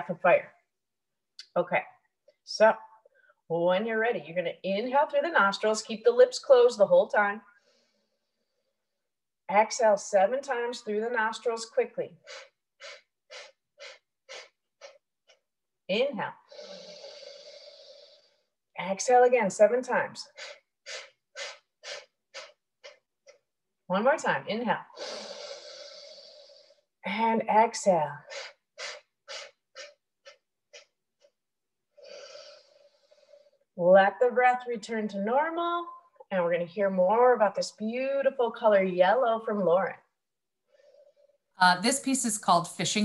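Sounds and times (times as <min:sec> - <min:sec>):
forceful nasal exhales: 0:12.2 - 0:15.0, 0:16.4 - 0:18.6, 0:20.3 - 0:23.0, 0:25.0 - 0:27.0, 0:28.2 - 0:30.9, 0:31.9 - 0:33.6
forceful exhales through nose: 0:16.5 - 0:18.4, 0:25.0 - 0:26.8, 0:32.0 - 0:33.5.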